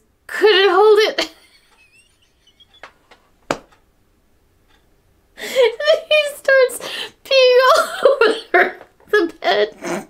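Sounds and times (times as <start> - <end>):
woman's stifled laughter: 1.2 - 2.9.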